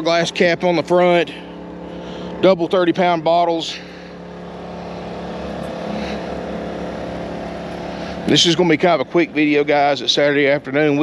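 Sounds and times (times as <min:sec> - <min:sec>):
portable generator running: 0:00.0 - 0:11.0.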